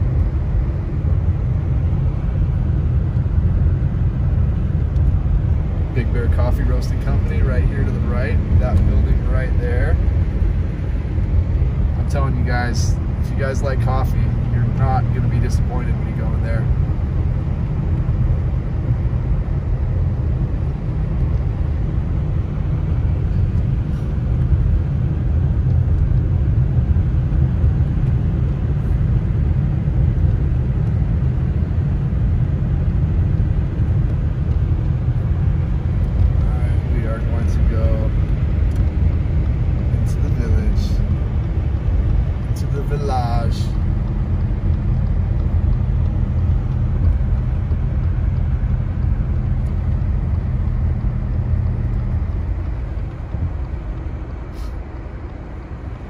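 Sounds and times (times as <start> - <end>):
car cabin road and engine rumble: 0.0 - 56.0.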